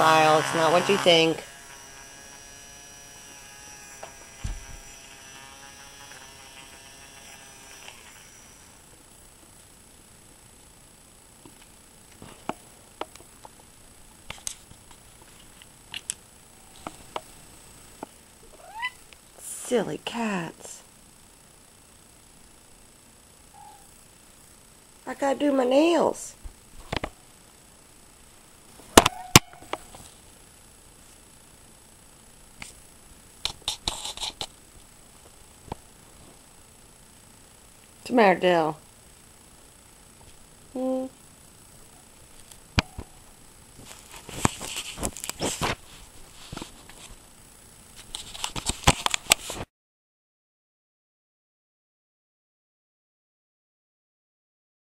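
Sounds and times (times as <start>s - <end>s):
electric nail file buzzing: 0.0s - 9.3s, 15.6s - 18.2s, 29.0s - 30.2s, 33.4s - 34.6s
soft thump: 4.4s - 4.8s
faint squeak: 23.6s - 23.9s.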